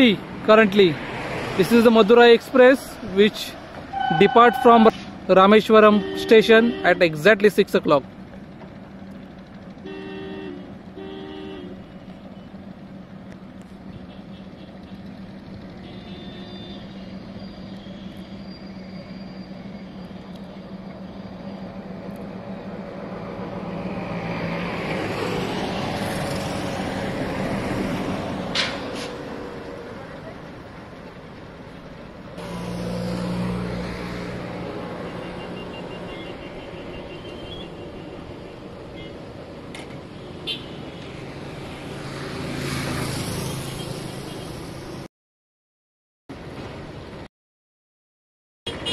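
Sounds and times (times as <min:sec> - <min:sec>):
vehicles passing: 0:00.0 - 0:45.1
car horn toots: 0:03.9 - 0:05.1, 0:05.8 - 0:07.2, 0:09.8 - 0:11.8, 0:15.8 - 0:17.1, 0:48.7 - 0:48.9.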